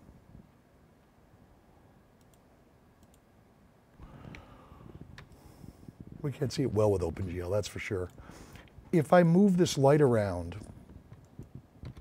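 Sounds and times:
computer mouse clicks: 2.2 - 2.4, 3.0 - 3.2, 11.1 - 12.0.

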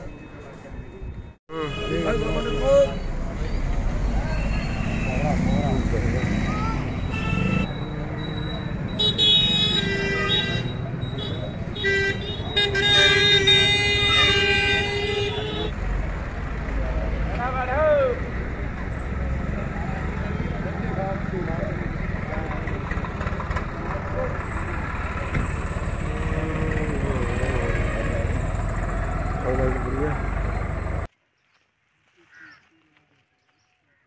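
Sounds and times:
vehicle horn blasts: 1.5 - 3.1, 7.1 - 7.7, 9.0 - 15.7
low engine rumble: 21.0 - 31.1.

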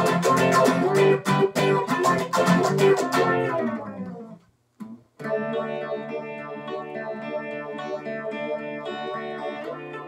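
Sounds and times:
electric guitar with tremolo: 0.0 - 10.0.

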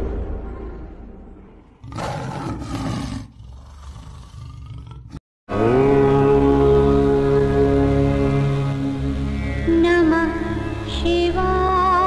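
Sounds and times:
big cat roar: 1.8 - 8.2
indian-style music string drone: 5.5 - 12.0.

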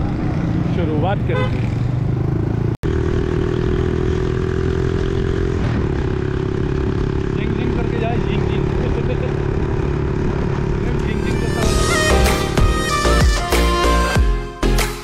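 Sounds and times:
motorcycle engine running: 0.0 - 12.8
road noise: 0.0 - 13.2.

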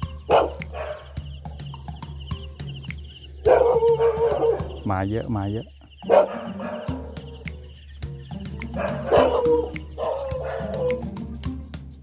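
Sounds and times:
background music: 0.0 - 12.0
dog barking and whining: 0.3 - 1.1, 3.4 - 4.8, 6.0 - 7.1, 8.7 - 11.0.

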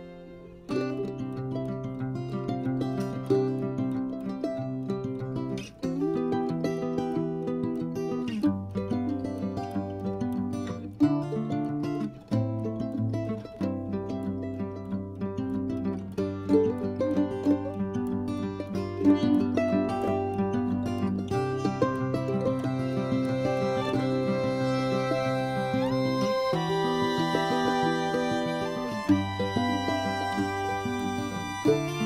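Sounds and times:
plucked string music: 0.0 - 32.0.

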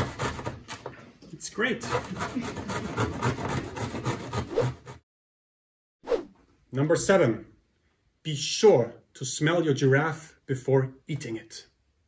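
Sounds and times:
root rasping on metal grater: 1.8 - 4.9.

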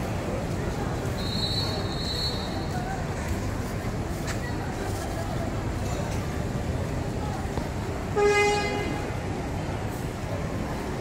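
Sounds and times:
crowd noise: 0.0 - 11.0
vehicle horn toot: 8.2 - 9.0.

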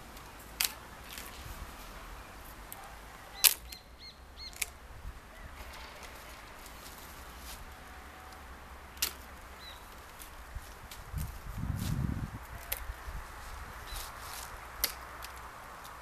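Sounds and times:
birds chirping: 0.0 - 10.6, 12.4 - 16.0
pruning shears snipping: 0.1 - 1.6, 2.7 - 4.8, 5.6 - 11.4, 12.4 - 12.9, 13.9 - 16.0.

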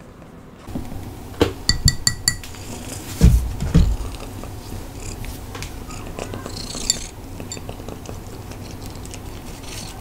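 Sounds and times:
cat crunching kibble: 4.0 - 10.0.

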